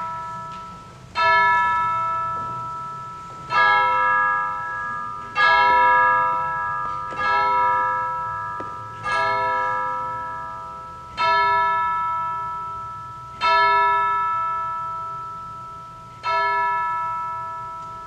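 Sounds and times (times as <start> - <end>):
church bell tolling: 0.0 - 18.0.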